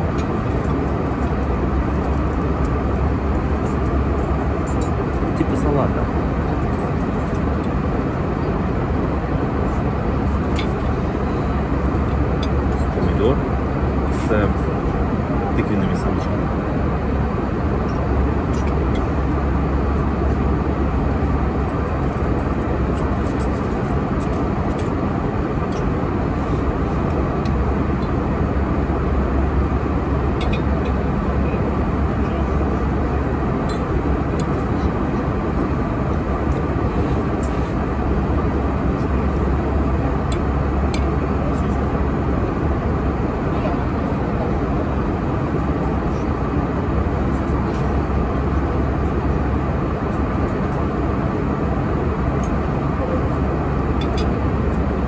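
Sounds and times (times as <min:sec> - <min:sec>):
airliner cabin drone: 0:00.0 - 0:55.0.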